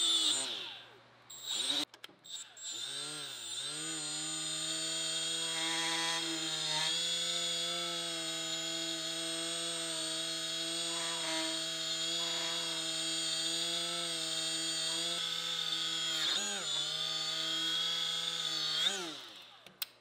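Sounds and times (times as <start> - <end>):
die grinder whining: 0.0 - 19.9.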